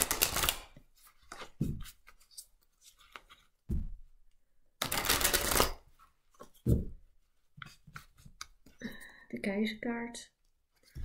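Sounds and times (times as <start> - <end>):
cards riffle-shuffled: 0.0 - 3.5, 4.8 - 5.8.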